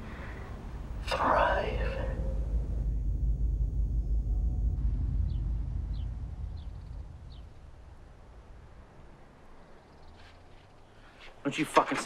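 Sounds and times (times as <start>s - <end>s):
breathy whisper-like sound: 0.0s - 3.0s
low rumble on microphone: 0.0s - 10.1s.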